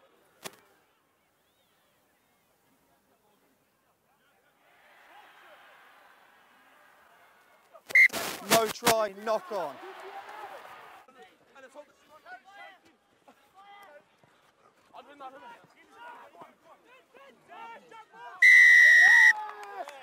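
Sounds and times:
referee's whistle blast: 0:07.9 - 0:08.4, 0:18.4 - 0:19.4.

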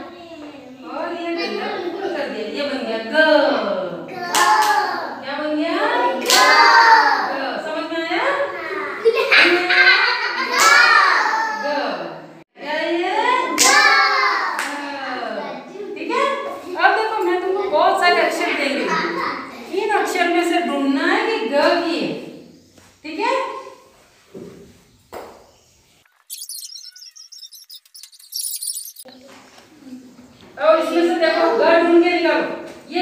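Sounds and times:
hand clap: 0:04.3 - 0:04.8
high-pitched chirping: 0:26.0 - 0:29.2.

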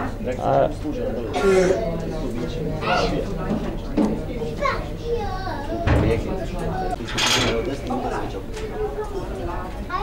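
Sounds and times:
people's voices in a room: 0:00.0 - 0:10.0
child's voice: 0:04.5 - 0:05.9, 0:08.8 - 0:10.0.

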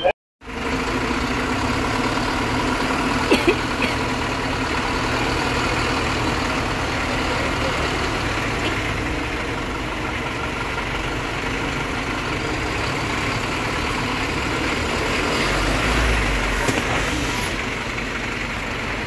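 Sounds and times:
bus engine idling: 0:00.0 - 0:19.0.

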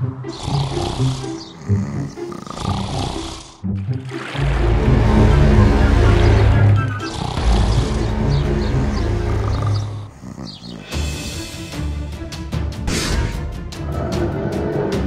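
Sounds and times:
dramatic background music: 0:00.0 - 0:15.0
deep animal roar: 0:04.6 - 0:11.2, 0:13.8 - 0:15.0.

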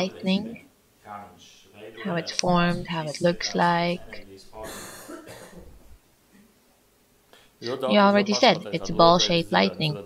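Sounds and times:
person soft cough: 0:04.6 - 0:05.8.

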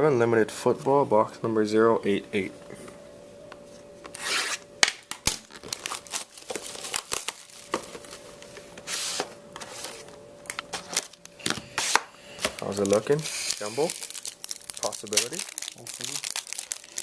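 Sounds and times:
plastic wrap tearing and crinkling: 0:05.2 - 0:08.4, 0:10.5 - 0:17.0.

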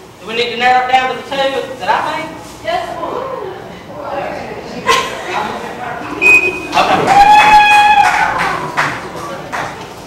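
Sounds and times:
voices in a large hall: 0:00.2 - 0:10.0.

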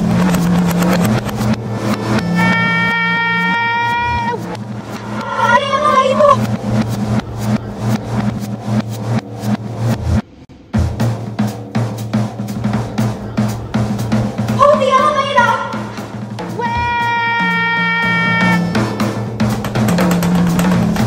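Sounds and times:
distorted warbling shout: 0:00.0 - 0:08.8, 0:12.9 - 0:19.2
held tone with overtones: 0:00.0 - 0:10.2
rapid clicking: 0:00.0 - 0:10.2, 0:18.5 - 0:21.0
steady low buzz: 0:00.0 - 0:14.7.

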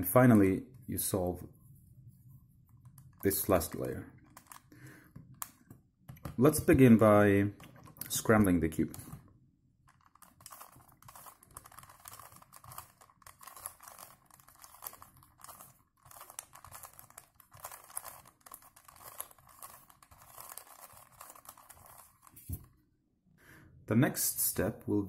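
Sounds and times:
puzzle cube plastic clicks: 0:02.9 - 0:06.4, 0:09.9 - 0:22.7.

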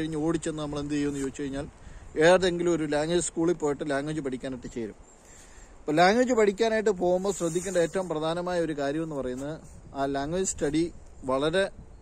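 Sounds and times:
man talking: 0:00.0 - 0:05.0, 0:05.8 - 0:11.8.

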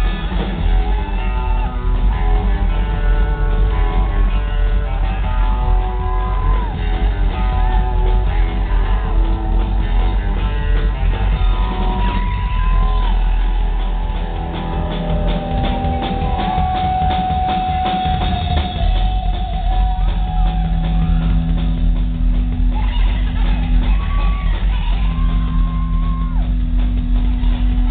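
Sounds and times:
electric guitar lead: 0:00.0 - 0:27.9
rockabilly band playing: 0:00.0 - 0:27.9.

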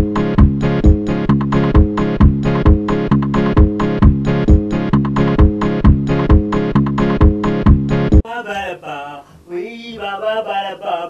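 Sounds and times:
man calling out in sing-song vowels: 0:08.2 - 0:11.0.

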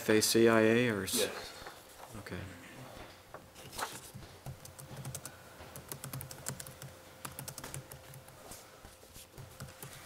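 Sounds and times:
laptop keyboard typing: 0:04.4 - 0:08.4, 0:09.3 - 0:10.0.

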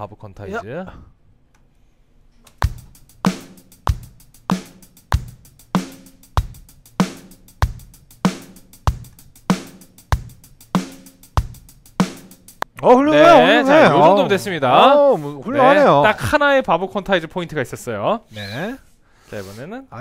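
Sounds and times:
closed hi-hat ticks: 0:02.5 - 0:12.8
programmed drum pattern: 0:02.6 - 0:12.7.

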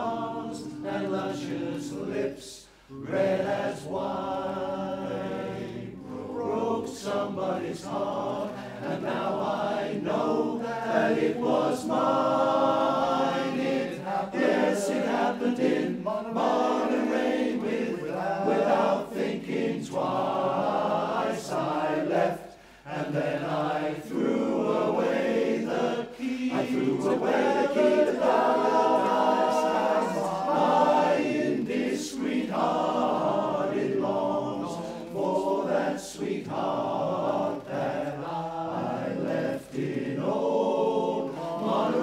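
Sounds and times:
male chorus singing a cappella: 0:00.0 - 0:42.0.

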